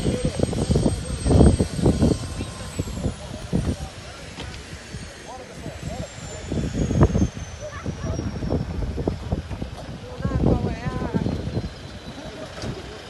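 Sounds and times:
jet engines winding down: 0.0s - 13.0s
people talking: 0.0s - 13.0s
wind buffeting microphone: 0.0s - 13.0s.

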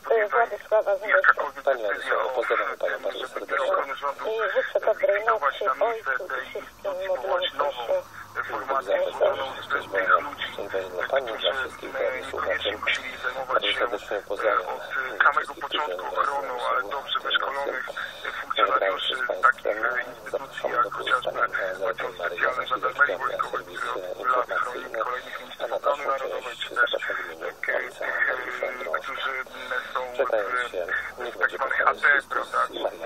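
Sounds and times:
radio-like voice talking: 0.0s - 33.0s.

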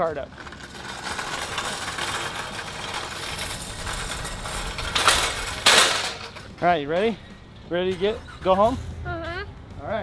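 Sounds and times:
shopping cart clattering: 0.0s - 7.2s
shopping cart wheels rattling: 0.0s - 7.2s.

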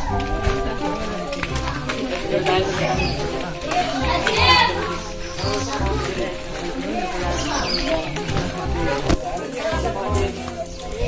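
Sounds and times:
young voices talking: 0.0s - 11.0s.

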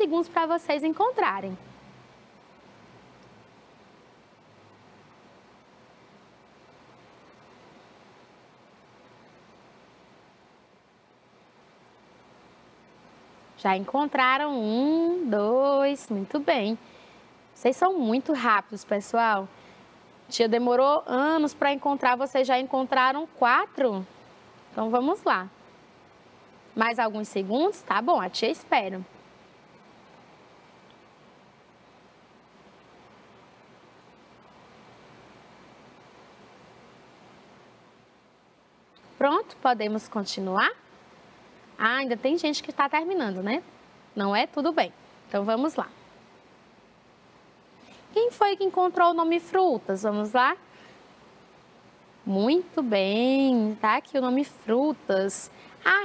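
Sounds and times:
faint background hiss: 0.0s - 56.0s.

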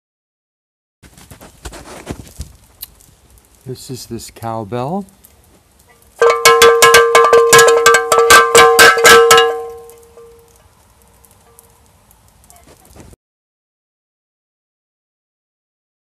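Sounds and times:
cowbell clanking: 6.2s - 10.4s.

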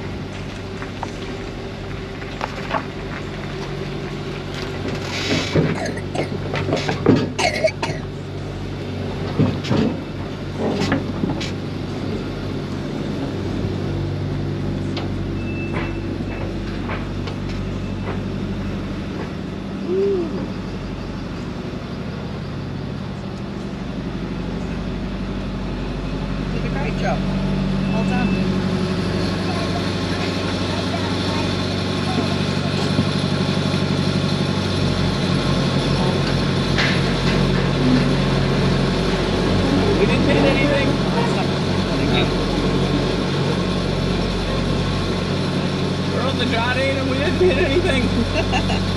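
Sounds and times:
engine running at low revs: 0.0s - 48.9s.

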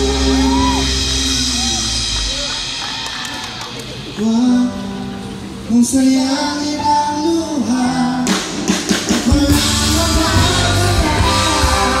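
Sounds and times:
rock band playing: 0.0s - 6.1s, 7.6s - 12.0s
heavy bass: 0.0s - 6.4s, 8.2s - 12.0s.

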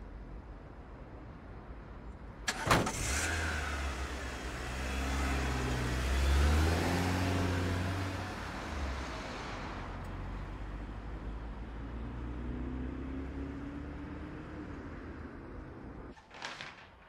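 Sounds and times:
car door shutting: 2.5s - 3.0s
car engine pulling away: 2.5s - 16.1s.

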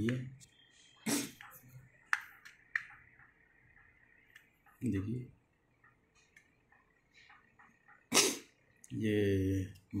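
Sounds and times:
person sneezing: 1.1s - 1.4s, 8.1s - 8.5s.

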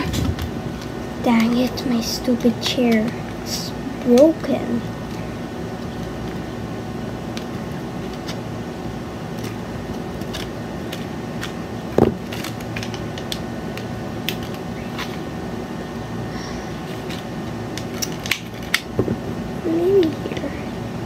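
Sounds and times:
room hum: 0.0s - 21.0s.

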